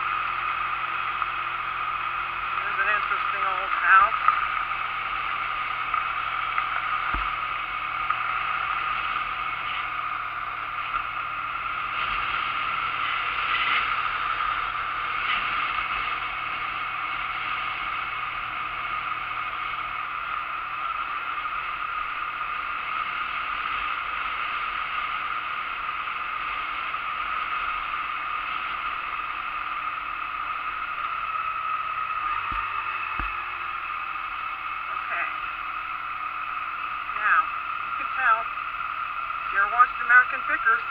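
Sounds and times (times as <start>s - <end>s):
motorcycle engine running: 0.0s - 40.9s
wind and road noise: 0.0s - 40.9s.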